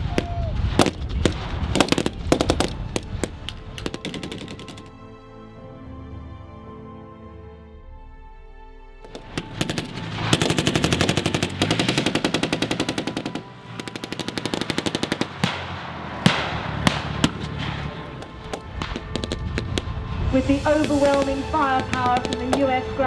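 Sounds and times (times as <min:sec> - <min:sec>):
background music: 0:00.0 - 0:23.0
machine-gun bursts: 0:09.1 - 0:15.4.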